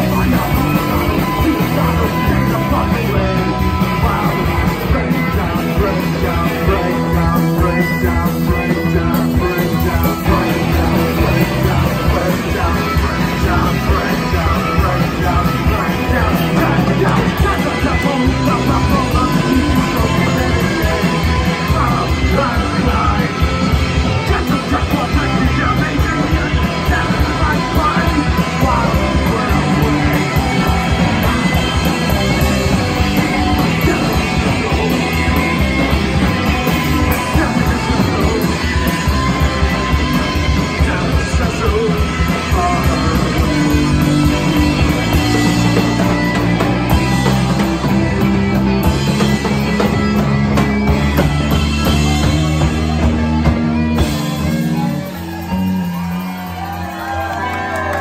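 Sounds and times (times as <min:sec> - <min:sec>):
fast driving drums: 0:00.0 - 0:58.0
punk rock band playing: 0:00.0 - 0:58.0.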